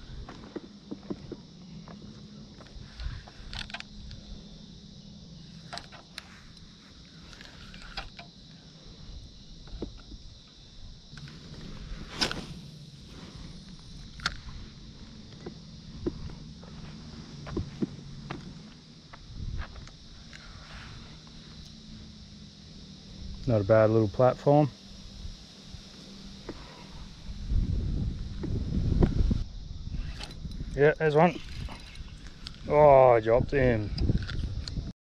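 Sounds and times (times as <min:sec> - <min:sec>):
knocks and clicks of fishing reel: 0:03.0 - 0:04.2, 0:07.3 - 0:08.3, 0:30.0 - 0:30.7.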